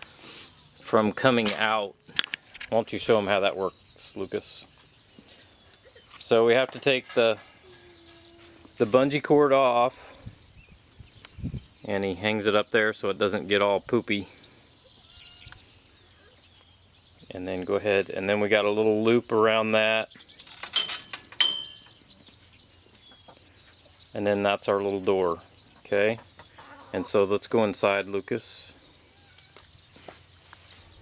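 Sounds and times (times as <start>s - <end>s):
chickens clucking: 0.0s - 31.0s
soft footsteps on straw: 3.0s - 7.6s, 14.4s - 20.0s, 28.4s - 31.0s
faint bird chirps: 3.6s - 6.3s, 7.4s - 8.8s, 14.2s - 17.7s.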